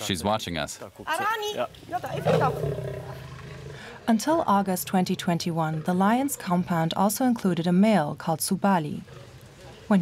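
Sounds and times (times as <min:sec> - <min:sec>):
lioness growling: 0:01.9 - 0:07.1.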